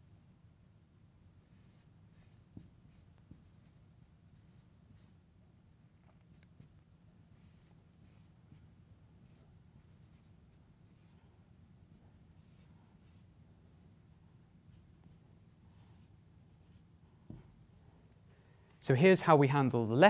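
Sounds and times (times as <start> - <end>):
low steady hum: 0.0 - 20.0
marker scratching on whiteboard: 1.4 - 5.2, 7.3 - 11.2, 11.9 - 13.3, 14.7 - 16.9.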